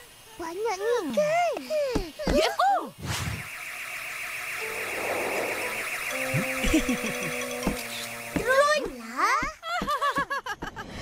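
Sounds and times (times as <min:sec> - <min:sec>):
drone propellers buzzing: 0:03.4 - 0:08.5
cartoon sound effect: 0:04.6 - 0:08.7.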